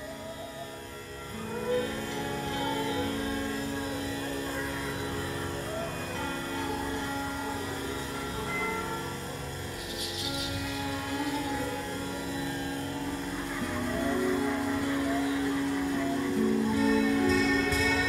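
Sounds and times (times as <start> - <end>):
sustained drone tones: 0.0 - 18.0
wavering pitched lines: 0.0 - 18.0.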